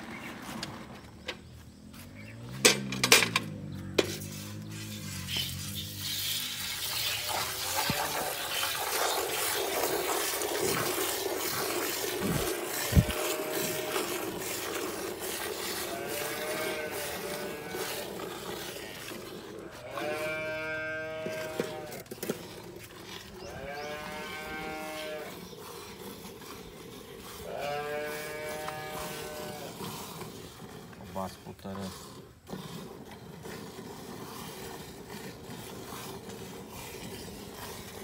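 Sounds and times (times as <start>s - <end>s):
milk jets splashing into bucket: 4.2s - 38.0s.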